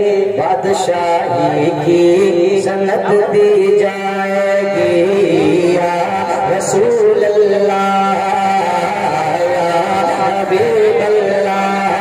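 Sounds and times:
man singing into a microphone: 0.0 - 12.0.

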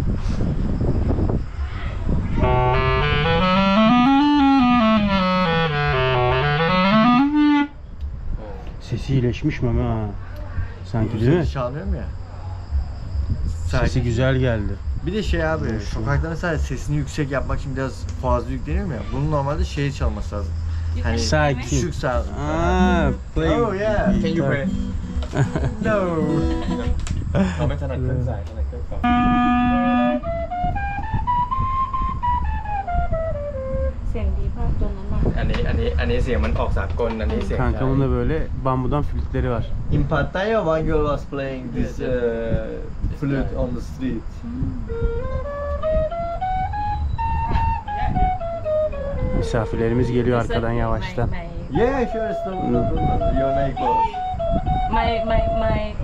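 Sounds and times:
rough breathy noise: 0.0 - 0.8
clarinet note sliding: 2.3 - 7.8, 22.4 - 27.0, 29.0 - 34.0, 52.1 - 55.9
guitar playing: 2.4 - 7.8, 21.1 - 27.4, 28.0 - 32.9
voices: 8.4 - 30.6, 34.0 - 46.8, 47.6 - 56.0.

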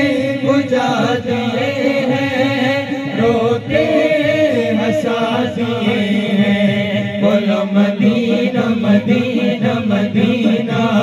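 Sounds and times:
men singing through microphones: 0.0 - 11.0.

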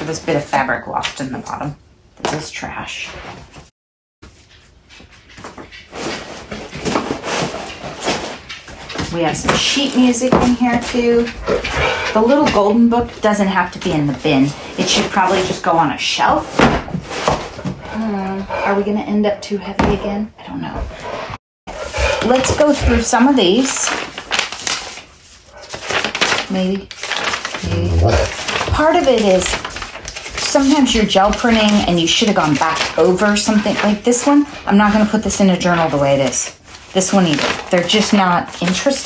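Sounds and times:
paper rustling in a cardboard box: 23.4 - 34.0.

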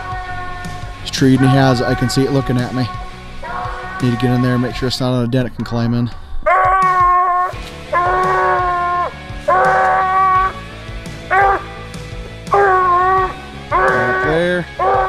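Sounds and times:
dog baying: 0.0 - 4.6, 6.4 - 15.0.

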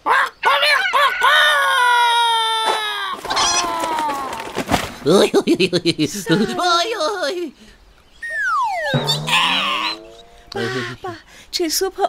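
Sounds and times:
cartoon rooster crowing: 8.6 - 11.0.

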